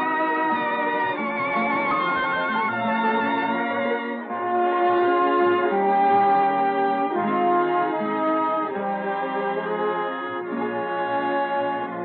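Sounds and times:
orchestra playing slow chords: 0.0s - 12.0s.

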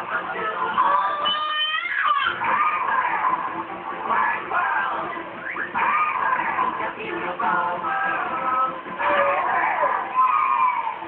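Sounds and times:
high-pitched cat-like vocal call: 0.8s - 3.3s, 9.0s - 11.0s.

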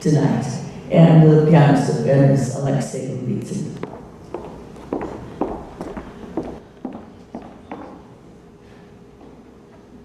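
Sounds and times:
footsteps on wooden floor: 3.8s - 8.1s.

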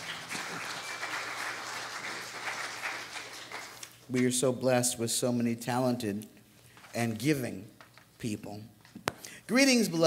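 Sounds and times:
crowd applauding: 0.0s - 4.0s.

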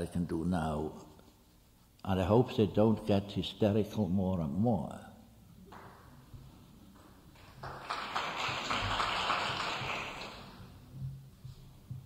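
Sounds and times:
audience applause: 7.4s - 10.6s.

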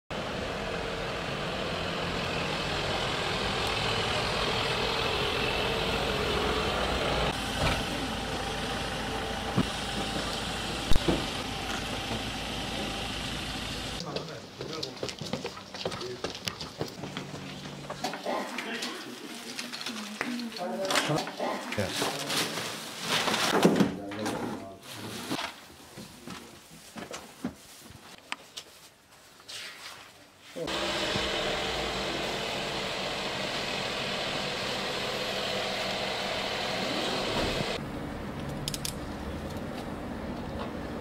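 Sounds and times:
vehicle engine running: 0.1s - 14.0s, 30.7s - 41.0s
plastic bags rustling: 18.6s - 23.5s.

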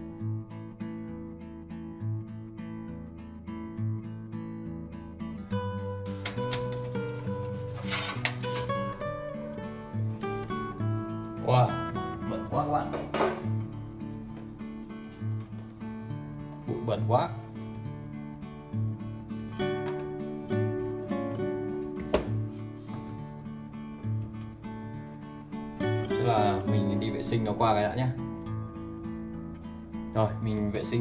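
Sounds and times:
strummed acoustic guitar music: 0.0s - 31.0s.

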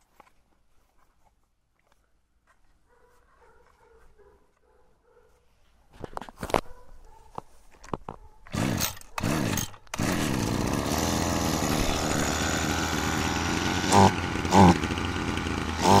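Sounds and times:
brush cutter engine running: 8.5s - 16.0s
engine revving: 8.5s - 16.0s
recoil starter pulls: 8.5s - 16.0s.

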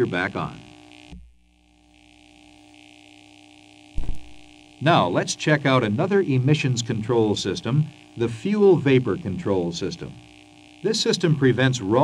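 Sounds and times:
low hum with faint hiss: 0.0s - 12.0s
loud low thump: 4.0s - 4.6s.

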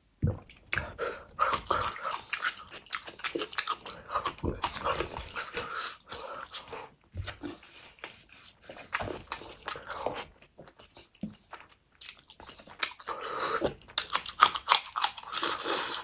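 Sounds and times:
wet chewing and lip-smacking: 0.3s - 16.0s.

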